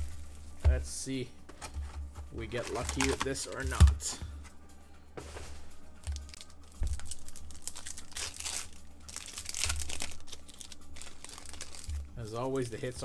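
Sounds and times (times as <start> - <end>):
foil wrapper tearing and crinkling: 2.5 - 3.8, 6.0 - 12.1.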